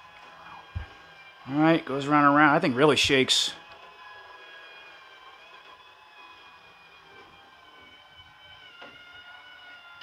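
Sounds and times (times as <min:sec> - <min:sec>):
small electric motor whine: 0:00.0 - 0:10.0.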